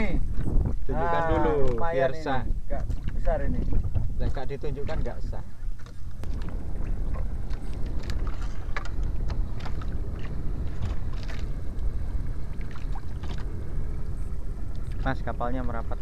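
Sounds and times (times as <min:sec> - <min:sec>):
wind and sea rumble: 0:00.0 - 0:16.0.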